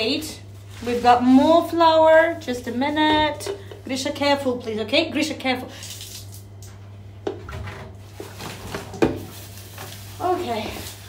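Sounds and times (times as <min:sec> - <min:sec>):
plastic jug and bowl knocking: 0:08.7 - 0:09.3.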